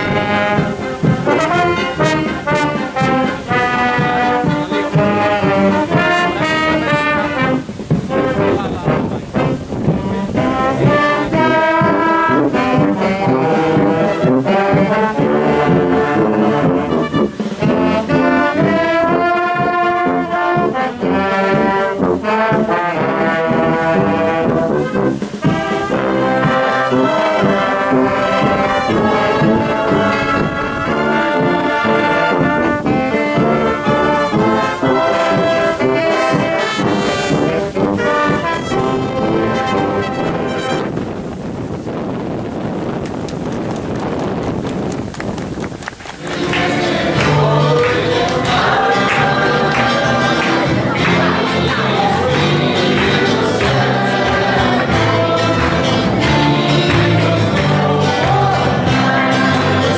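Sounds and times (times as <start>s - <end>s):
marching wind band playing: 0.0s - 59.9s.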